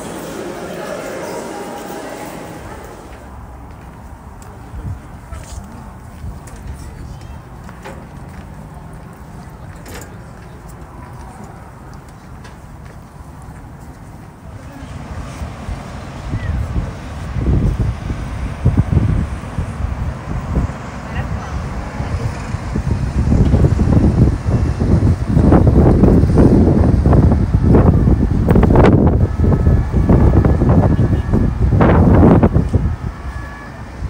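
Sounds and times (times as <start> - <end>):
faint traffic: 0.0 - 34.0
people's voices: 0.0 - 34.0
wind rumble on microphone: 3.5 - 9.8, 10.4 - 34.0.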